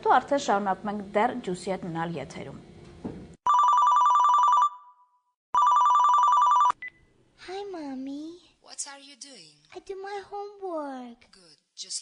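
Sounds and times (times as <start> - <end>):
telephone ringing: 3.5 - 6.8.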